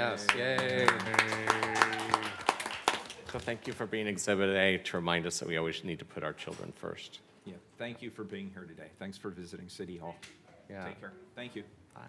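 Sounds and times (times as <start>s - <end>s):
small group clapping: 0.0s - 4.0s
drawn-out cheer: 0.8s - 2.8s.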